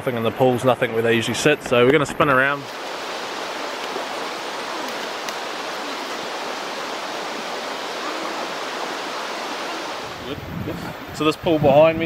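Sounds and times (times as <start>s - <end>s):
river rushing over rocks: 2.6s - 10.3s.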